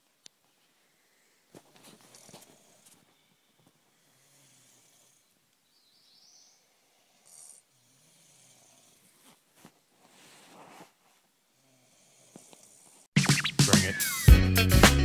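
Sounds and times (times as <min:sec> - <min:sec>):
person snoring: 0:03.9 - 0:05.3, 0:06.6 - 0:09.2, 0:11.6 - 0:13.0.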